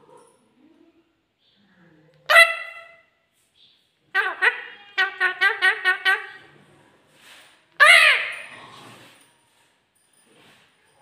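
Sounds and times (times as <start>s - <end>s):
parakeet ringing call: 7.8s - 8.5s.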